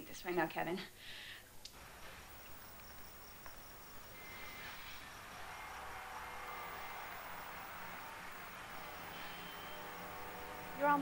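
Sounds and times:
crickets chirping: 1.8s - 11.0s.

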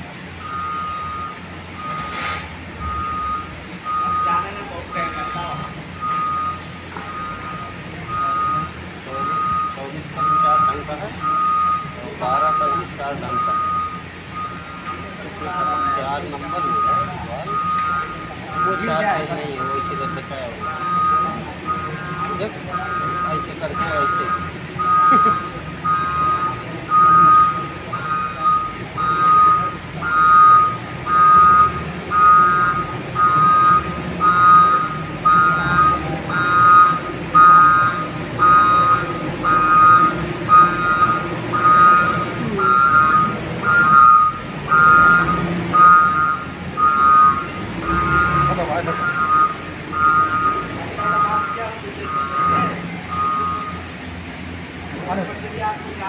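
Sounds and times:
vehicle reversing alarm beeping: 0.0s - 56.0s.

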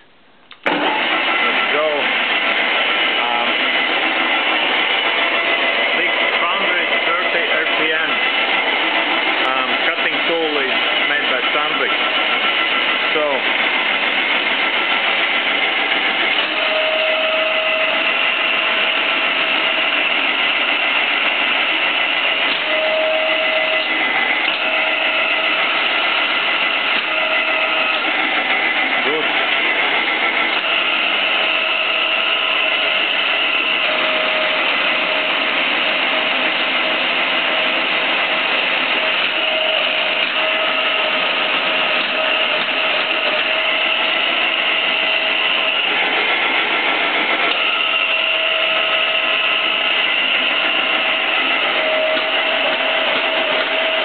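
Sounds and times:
milling machine running: 0.0s - 54.0s
gear whine: 0.6s - 54.0s.

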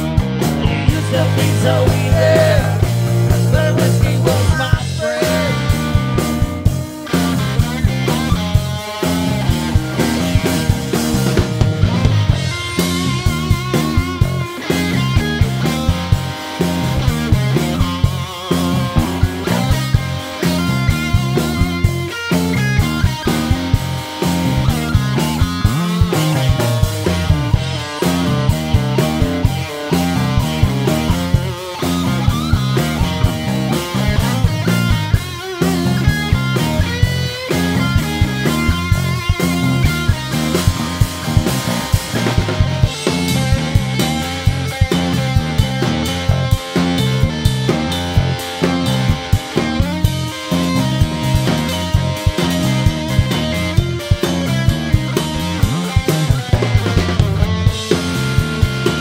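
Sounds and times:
bass guitar figure: 0.0s - 59.0s
drum kit beat: 0.0s - 59.0s
electric guitar with bending notes: 0.0s - 59.0s.

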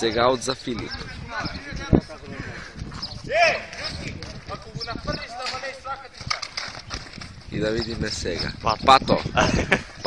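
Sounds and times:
men calling out and talking: 0.0s - 10.0s.

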